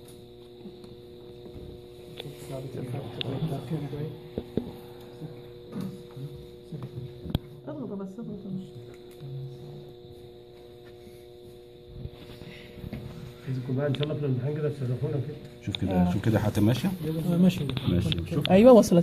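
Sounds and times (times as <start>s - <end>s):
electrical hum: 0.0s - 19.0s.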